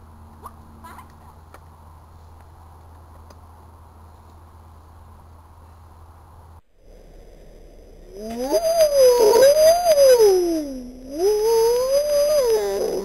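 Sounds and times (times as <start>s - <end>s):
wavering vocal howl: 8.1s - 13.0s.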